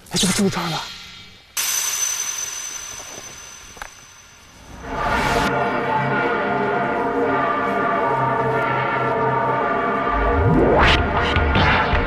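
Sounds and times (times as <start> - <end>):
shimmering hiss with ringing tone: 1.0 - 6.2
rising whoosh: 1.6 - 12.0.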